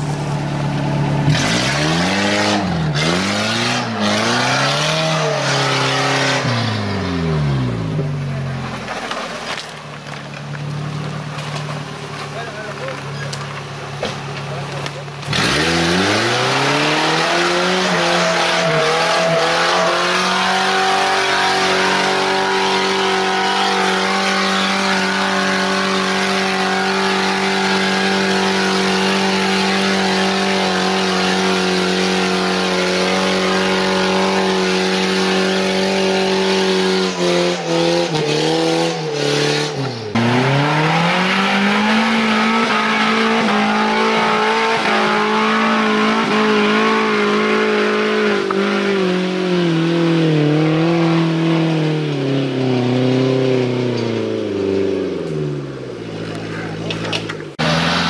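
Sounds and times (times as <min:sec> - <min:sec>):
engine revving high in mud: 0:00.0 - 0:09.9, 0:10.6 - 0:58.0.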